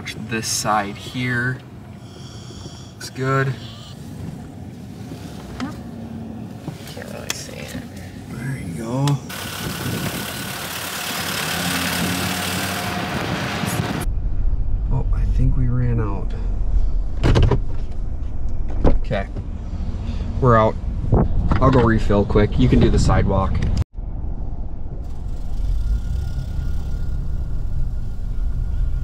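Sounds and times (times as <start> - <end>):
truck low rumble: 0.0 - 29.0
wind rushing on microphone: 9.4 - 10.5, 17.9 - 25.1.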